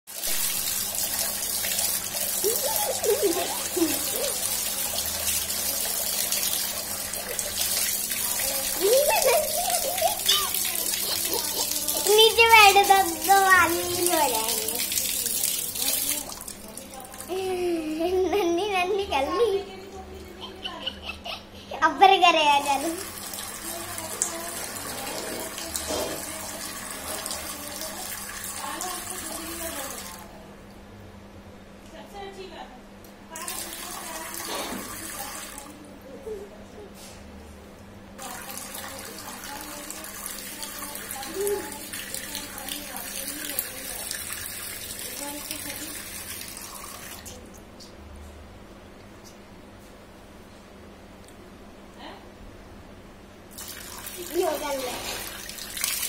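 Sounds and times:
water splashing on stone floor: 0:00.2 - 0:17.3, 0:53.5 - 0:56.0.

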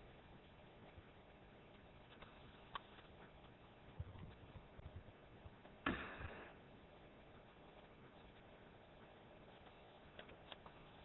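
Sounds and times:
small clicks: 0:10.1 - 0:10.8.

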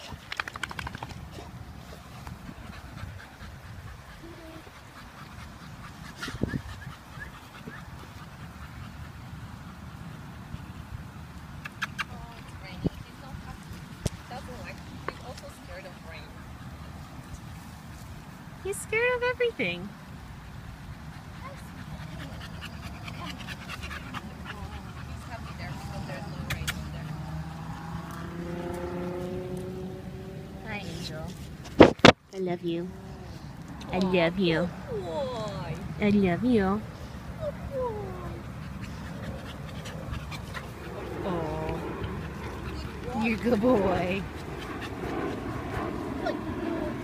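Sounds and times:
dog panting and whimpering: 0:01.2 - 0:10.9, 0:20.8 - 0:27.2, 0:32.9 - 0:47.0
steady low rumble: 0:32.4 - 0:47.0.

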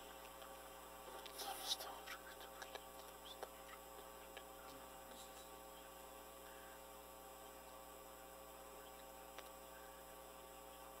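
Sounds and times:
faint click: 0:08.9 - 0:09.6.

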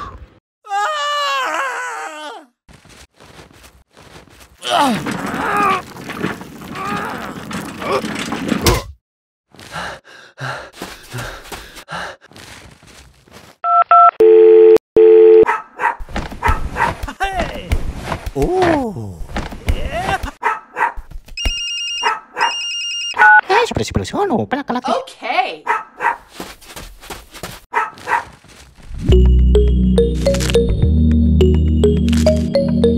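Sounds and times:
mobile phone ringtone: 0:13.7 - 0:15.4, 0:21.4 - 0:23.4, 0:29.1 - 0:30.9, 0:31.5 - 0:32.9
dog yipping: 0:15.5 - 0:16.9, 0:20.4 - 0:21.0, 0:22.0 - 0:22.6, 0:25.7 - 0:26.3, 0:27.7 - 0:28.4.

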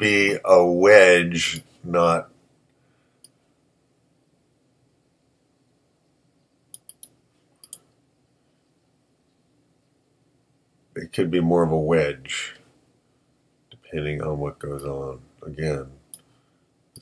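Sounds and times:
computer mouse clicking: 0:06.8 - 0:07.8.

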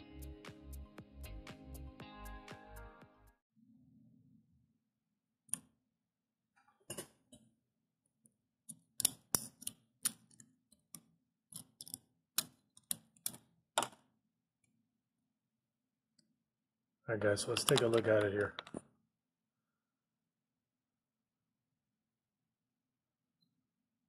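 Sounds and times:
plastic clicks and taps: 0:17.6 - 0:18.9.

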